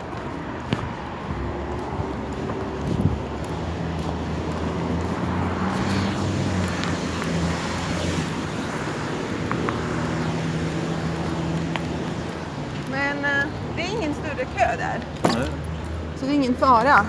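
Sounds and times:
road traffic hum: 0:00.0 - 0:17.0.

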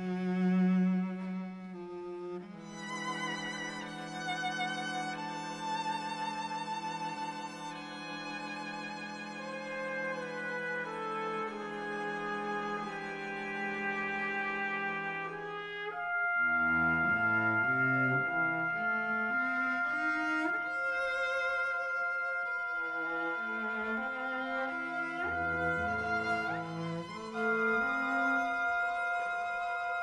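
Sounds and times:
symphony orchestra playing: 0:00.0 - 0:30.0.

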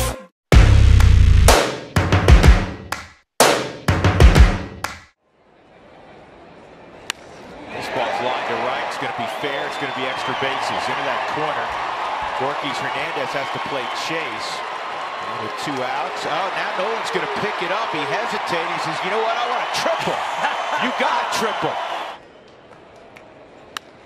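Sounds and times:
intro music with heavy drums: 0:00.0 - 0:04.9.

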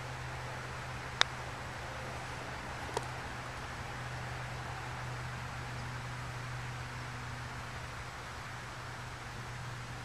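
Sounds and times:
outdoor hiss with low hum: 0:00.0 - 0:10.0.

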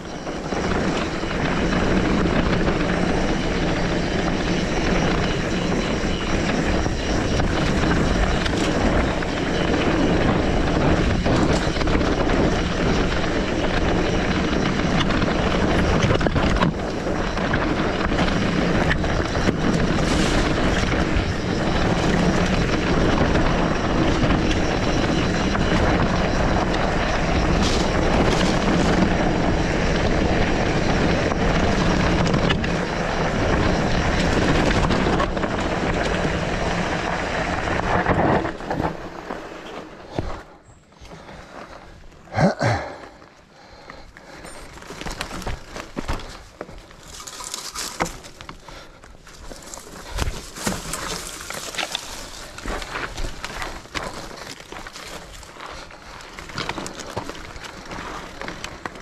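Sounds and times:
wind rushing over microphone: 0:00.0 - 0:40.6
bike tyres rolling on trail: 0:00.0 - 0:59.0.

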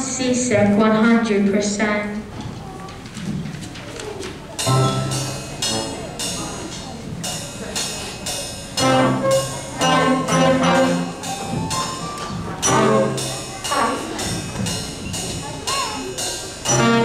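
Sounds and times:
percussion beats: 0:02.2 - 0:17.0
trombone and saxophone playing: 0:04.6 - 0:06.5, 0:08.8 - 0:14.7, 0:16.6 - 0:17.0.

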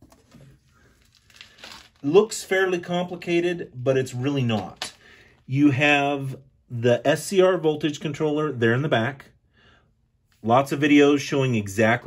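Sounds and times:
soft rustles: 0:00.0 - 0:02.2.

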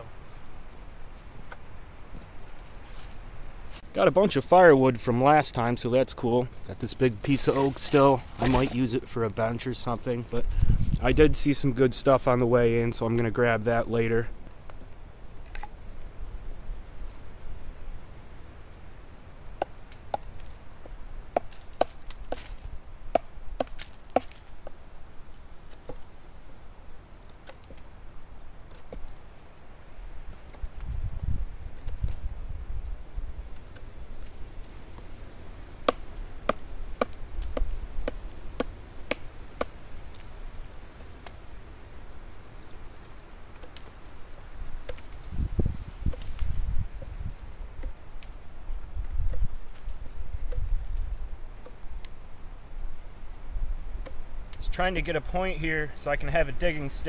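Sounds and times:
blade chopping wood: 0:21.3 - 0:24.7, 0:35.8 - 0:39.8.

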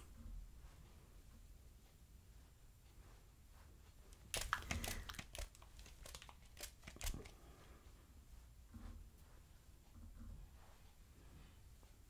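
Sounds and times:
wig fibres crinkling: 0:03.9 - 0:07.4.

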